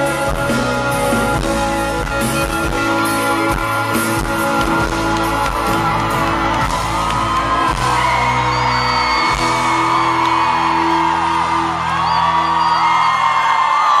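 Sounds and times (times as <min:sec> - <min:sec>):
crowd screaming and whooping: 0:00.0 - 0:14.0
live pop band playing: 0:00.0 - 0:14.0.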